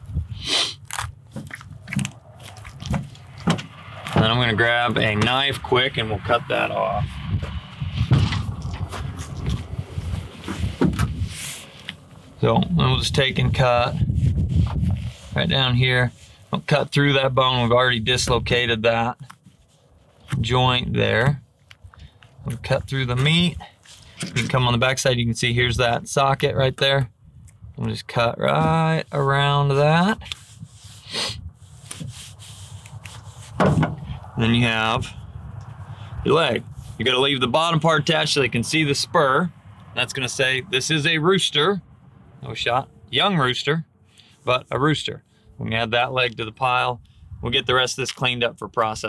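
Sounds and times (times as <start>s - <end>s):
steady low rumble: 0.0s - 19.2s, 31.4s - 49.0s
handling knocks: 33.6s - 34.1s.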